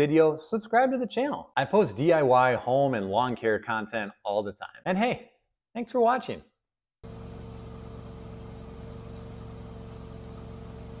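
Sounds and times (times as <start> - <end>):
sprayer rig humming: 7.0 - 11.0.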